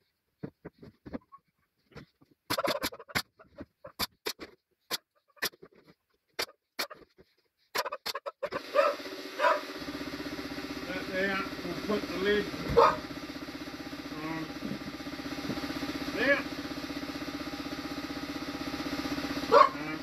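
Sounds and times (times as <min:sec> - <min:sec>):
air compressor motor hum: 0:08.5 - 0:20.0.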